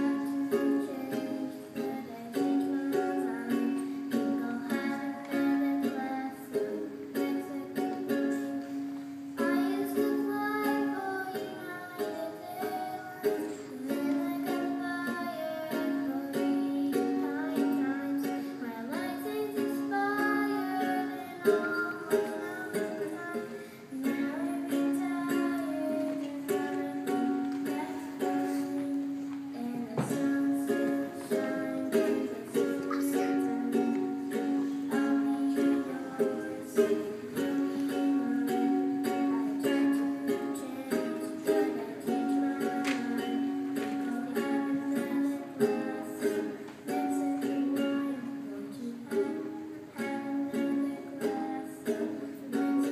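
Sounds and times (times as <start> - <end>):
girl singing: 0.0 - 52.9
ukulele strumming chords: 0.0 - 52.9.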